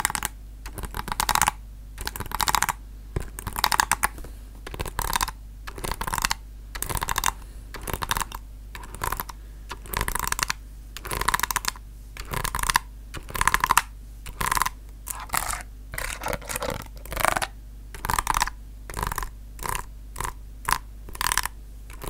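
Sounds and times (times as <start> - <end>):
rapid tapping on keys: 0.0 - 22.0.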